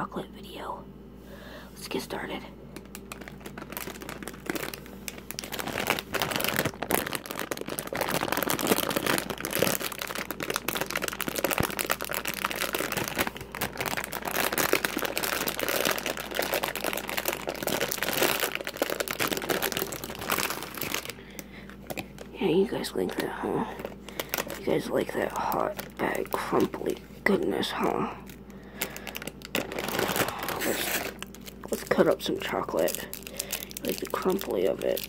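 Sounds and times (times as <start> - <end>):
plastic wrapper crinkling: 2.7 - 35.0.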